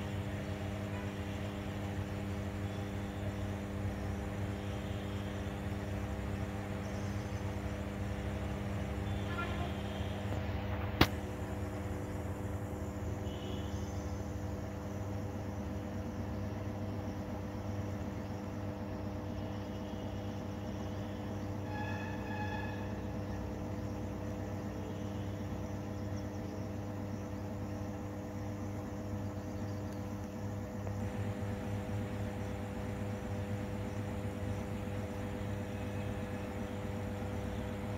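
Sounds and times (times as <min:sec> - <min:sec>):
transformer electrical hum: 0:00.0 - 0:37.9.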